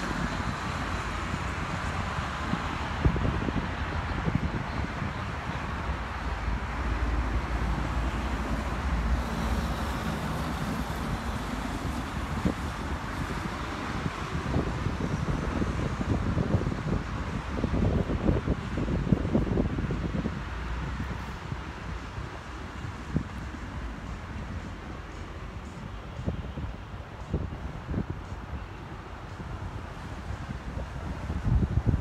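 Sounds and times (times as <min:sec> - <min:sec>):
road traffic noise: 0:00.0 - 0:32.0
wind buffeting microphone: 0:00.0 - 0:32.0.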